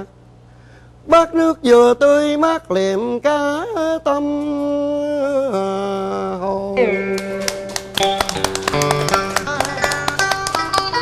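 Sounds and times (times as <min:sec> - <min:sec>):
plucked string melody: 0:06.8 - 0:11.0.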